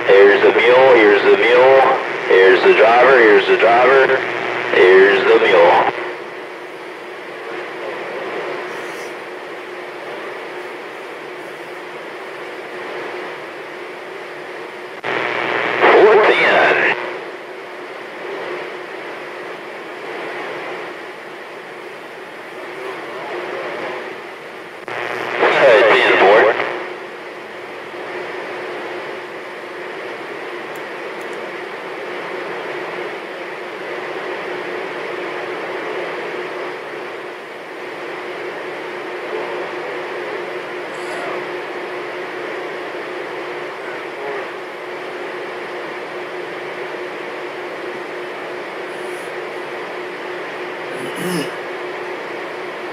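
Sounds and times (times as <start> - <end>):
garbled radio transmission: 0.0 - 51.7
faint hum: 0.0 - 52.9
radio static hiss: 0.0 - 52.9.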